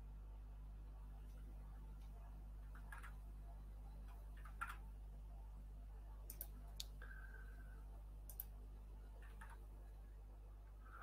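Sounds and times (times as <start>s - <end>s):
low electrical hum: 0.0s - 11.0s
computer mouse clicks: 2.7s - 3.2s, 4.0s - 4.9s, 6.2s - 7.2s, 8.2s - 8.6s, 9.2s - 9.7s.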